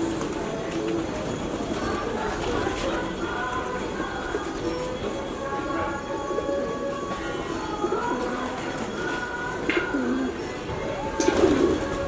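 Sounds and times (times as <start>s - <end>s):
pigeons cooing: 0.6s - 12.0s.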